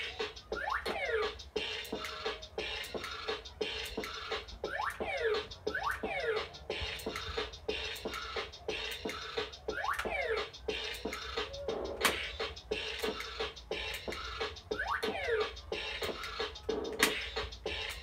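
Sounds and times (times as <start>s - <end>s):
fast electronic beat: 0.0s - 18.0s.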